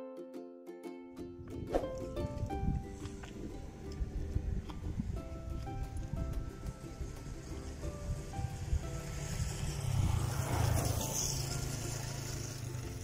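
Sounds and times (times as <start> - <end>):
music with held notes: 0.0 - 13.0.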